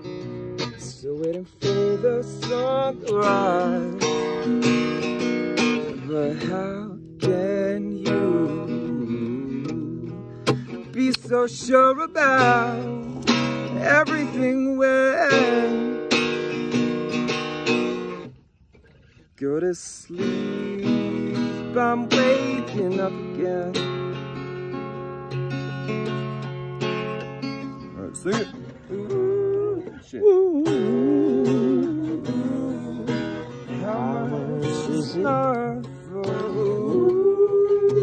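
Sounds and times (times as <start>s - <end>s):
person singing: 0.0s - 4.8s, 5.7s - 16.0s, 19.4s - 24.1s, 28.0s - 38.0s
acoustic guitar strumming: 0.0s - 38.0s.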